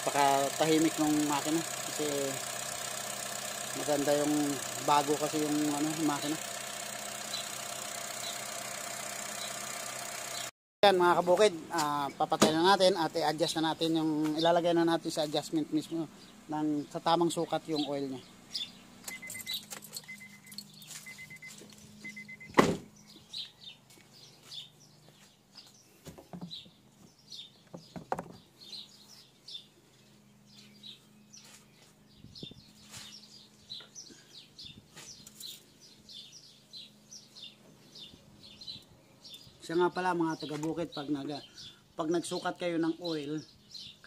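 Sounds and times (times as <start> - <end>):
small birds chirping: 0.0 - 9.7, 10.3 - 44.0
car warning chime beeping: 19.1 - 22.6
car door shutting: 22.4 - 22.9.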